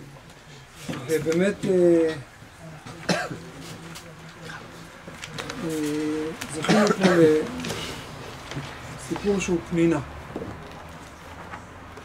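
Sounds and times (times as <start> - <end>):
person coughing: 3.1 - 3.4, 6.6 - 7.4.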